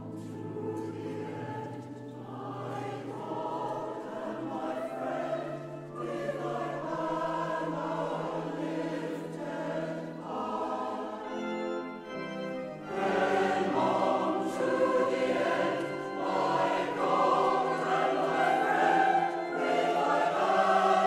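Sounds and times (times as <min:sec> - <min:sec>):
choir singing sustained chords: 0:00.0 - 0:21.0.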